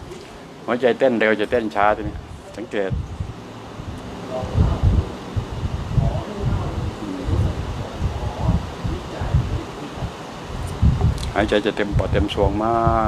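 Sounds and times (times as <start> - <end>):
faint murmuring voice: 4.3 - 11.4
puffs and thumps on microphone: 10.6 - 12.2.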